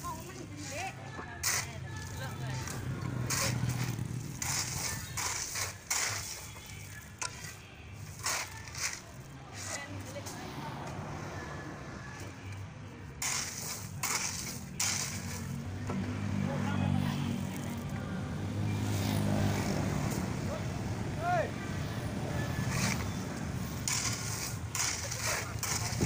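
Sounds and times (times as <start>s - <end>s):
shovel scraping sand and gravel: 0.0s - 10.4s, 13.1s - 15.6s, 22.5s - 26.0s.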